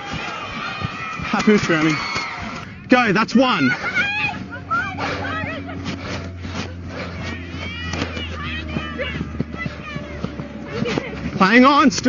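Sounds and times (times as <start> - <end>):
players shouting and calling: 0.0 - 12.0
steady low hum: 2.6 - 12.0.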